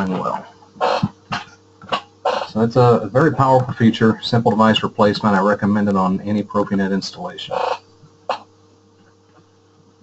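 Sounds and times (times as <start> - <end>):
faint electrical hum and hiss: 0.0 - 10.0.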